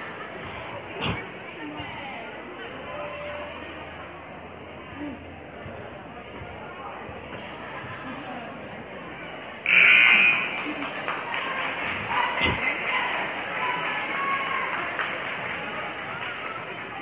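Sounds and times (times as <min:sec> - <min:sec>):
crowd murmur: 0:00.0 - 0:17.0
scoreboard buzzer: 0:09.6 - 0:10.7.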